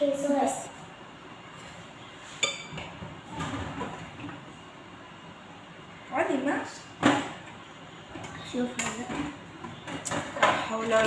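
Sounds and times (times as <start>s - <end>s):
dishes and utensils clinking: 2.3s - 4.4s.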